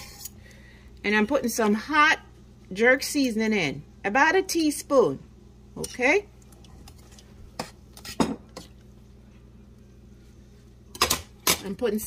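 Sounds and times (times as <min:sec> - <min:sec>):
metal spoon stirring in a pot: 0:00.0 - 0:00.4.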